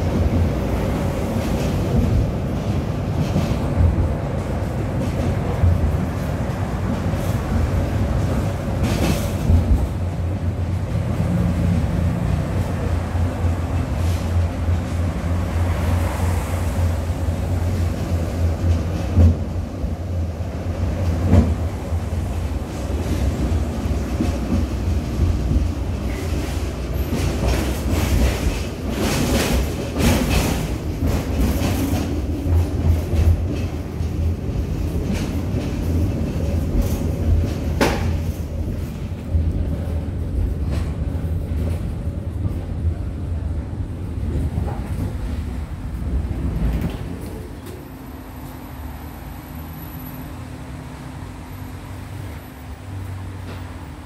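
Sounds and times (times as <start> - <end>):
wheels clattering on rails: 0.0 - 50.4, 51.5 - 54.0
tram running hum: 0.0 - 54.0.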